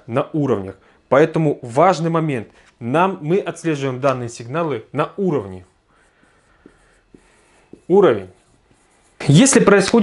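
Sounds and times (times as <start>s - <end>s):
marker squeaking on whiteboard: 5.4s - 10.0s.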